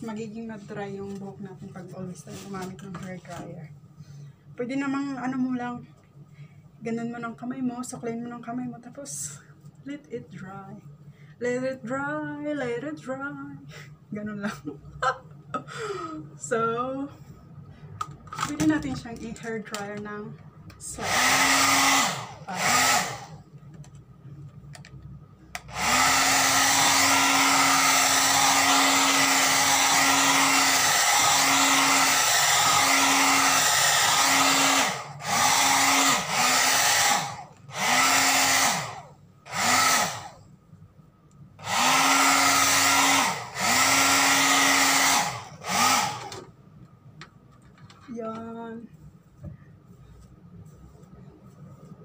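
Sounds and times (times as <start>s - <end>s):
hair dryer blowing: 20.8s - 23.5s, 25.6s - 40.4s, 41.6s - 46.5s
hair dryer motor spinning down: 20.9s - 23.5s, 25.5s - 40.4s, 41.6s - 46.5s.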